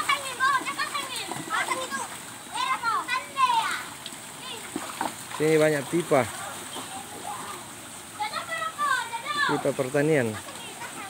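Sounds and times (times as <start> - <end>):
water splashing: 0.0 - 11.0.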